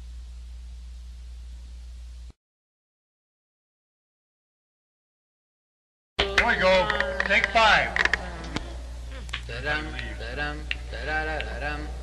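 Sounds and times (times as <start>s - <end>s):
low mains hum: 0.0s - 2.4s, 6.2s - 12.0s
people talking: 6.2s - 8.4s, 9.1s - 12.0s.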